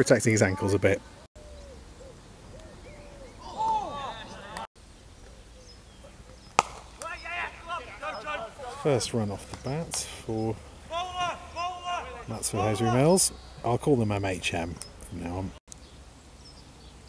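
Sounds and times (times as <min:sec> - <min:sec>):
distant shouts from players: 0:02.6 - 0:04.7, 0:06.0 - 0:13.8
cricket bat striking ball: 0:06.5 - 0:08.3, 0:09.4 - 0:09.7.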